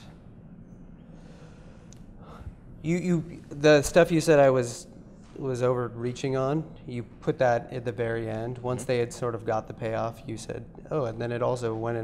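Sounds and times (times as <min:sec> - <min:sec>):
man speaking: 0:02.8 - 0:12.0.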